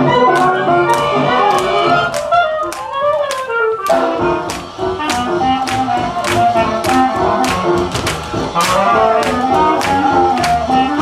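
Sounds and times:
jazz music with horns: 0.0s - 11.0s.

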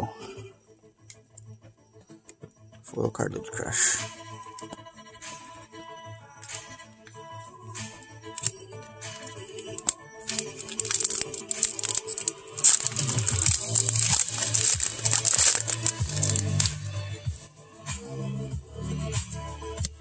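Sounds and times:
background music: 0.0s - 20.0s
foil wrapper crinkling and tearing: 9.7s - 16.9s.

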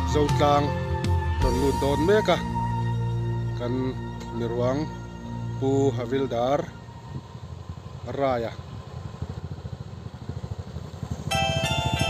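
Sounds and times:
music with sustained tones: 0.0s - 7.8s, 11.3s - 12.0s
motorcycles riding past: 4.6s - 12.0s.

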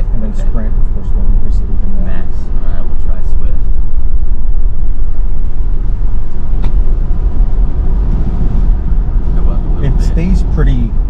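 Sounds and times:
road and tyre noise in car cabin: 0.0s - 11.0s.

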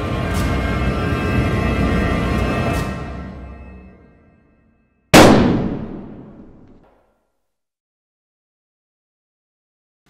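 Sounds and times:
loud gunshot with echo: 5.2s - 6.8s.

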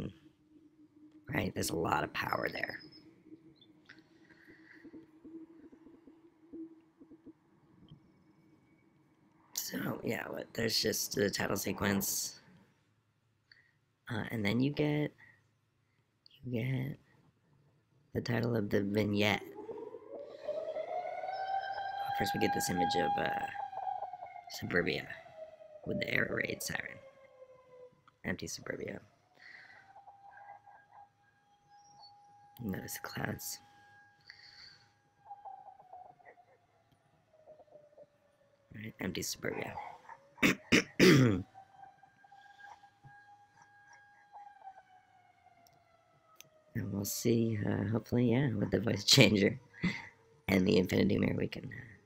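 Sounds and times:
faint air-raid siren wailing: 0.0s - 13.0s, 16.7s - 52.0s
air-raid siren winding up: 19.2s - 28.0s, 41.4s - 46.6s.

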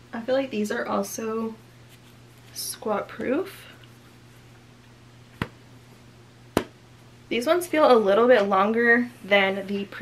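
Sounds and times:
faint steady hum: 0.0s - 10.0s
hand slapping body: 5.4s - 5.6s, 6.5s - 6.8s.

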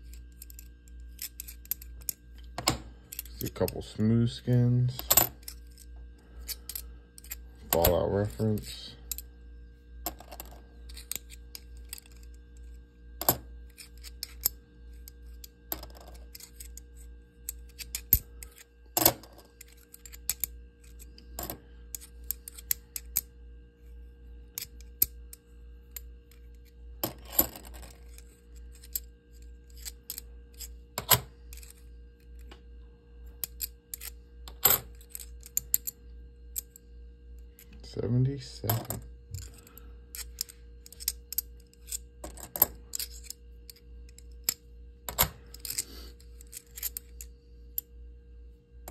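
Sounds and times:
faint steady hum: 0.0s - 48.9s.

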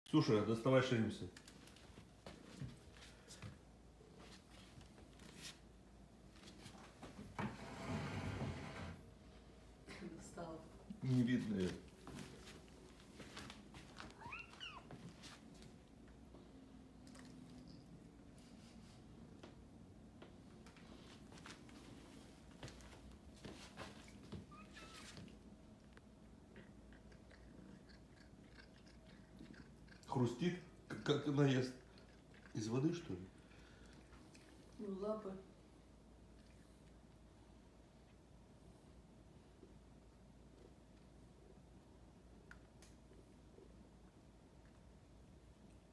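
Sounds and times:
cat chewing with soft crunches: 1.3s - 6.8s, 14.9s - 34.8s, 35.8s - 45.9s
plastic container scraping on tile: 7.4s - 9.0s
rustling scrape: 7.4s - 9.1s.

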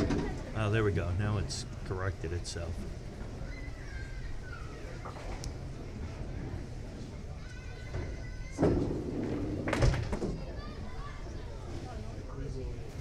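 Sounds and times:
low chatter of onlookers: 0.0s - 13.0s.

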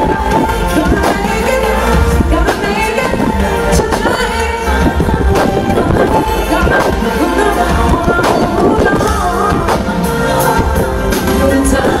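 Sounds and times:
live band with singer: 0.0s - 12.0s.

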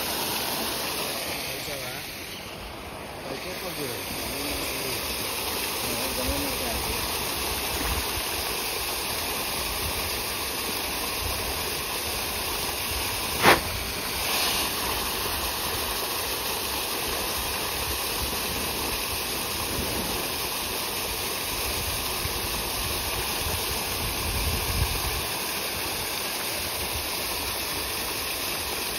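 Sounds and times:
loud sharp splash: 13.2s - 15.0s.

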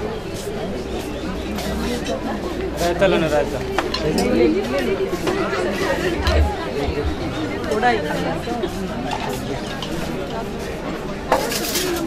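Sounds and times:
crowd chatter: 0.0s - 12.0s
low rumble: 6.0s - 7.7s.

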